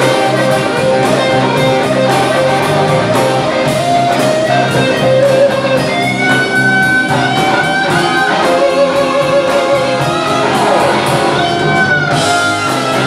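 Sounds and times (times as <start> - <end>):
bass guitar: 0.0 - 13.0
drums: 0.0 - 13.0
electric guitar bending notes: 0.0 - 13.0.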